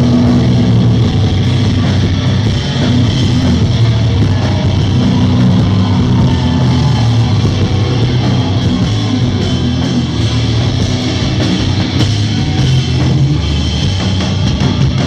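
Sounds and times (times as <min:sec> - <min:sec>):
metal band playing: 0:00.0 - 0:15.0.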